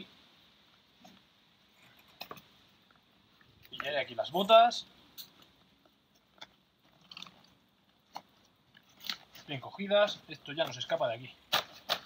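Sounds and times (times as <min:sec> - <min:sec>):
backpack strap clicks and rustles: 0:06.2 - 0:09.5.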